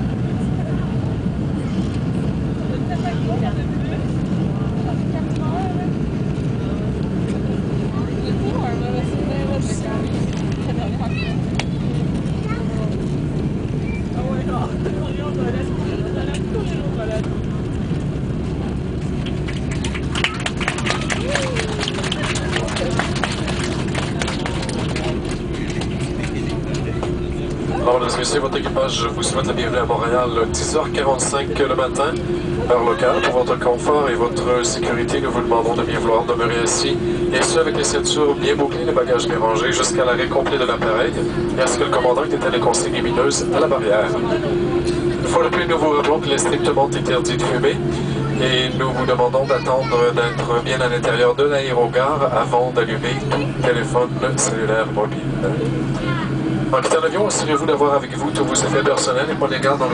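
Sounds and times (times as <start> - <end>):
airliner cabin rumble: 0.0 - 59.9.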